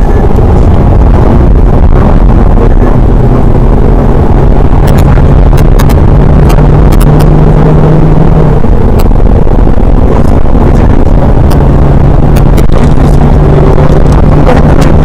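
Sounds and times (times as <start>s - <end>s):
car engine drone: 0.0s - 15.0s
road and wind noise: 0.0s - 15.0s.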